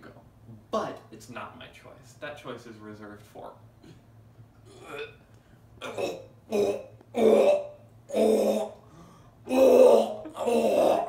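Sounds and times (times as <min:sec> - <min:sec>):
man making guttural croaks: 0:05.8 - 0:08.8, 0:09.5 - 0:11.0.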